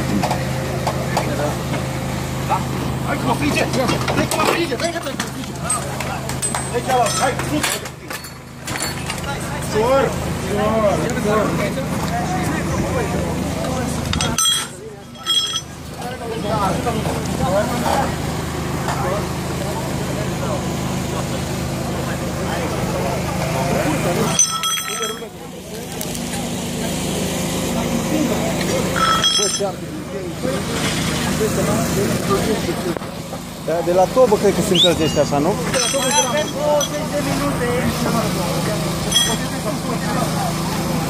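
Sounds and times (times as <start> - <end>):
indistinct voices talking: 0.0 - 41.0.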